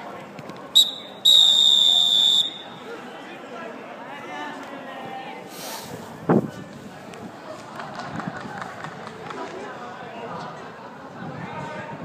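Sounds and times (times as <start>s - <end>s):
referee's whistle blast: 0.8s - 2.8s.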